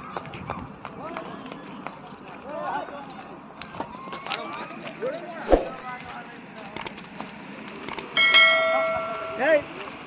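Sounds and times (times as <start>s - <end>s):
sharp clicks: 7.9s - 8.2s.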